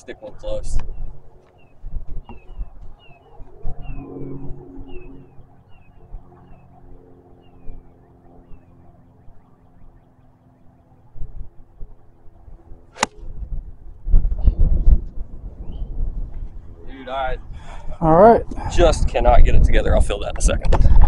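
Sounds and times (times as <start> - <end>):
faint hum: 0.0 - 20.3
bird chirping: 0.8 - 11.4.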